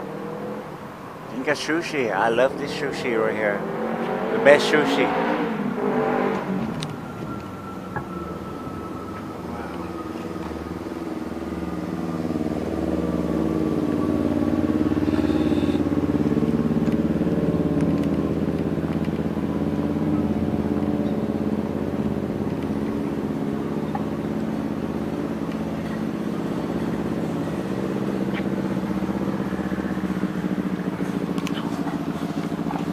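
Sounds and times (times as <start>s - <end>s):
vehicle engine humming: 0.0s - 32.9s.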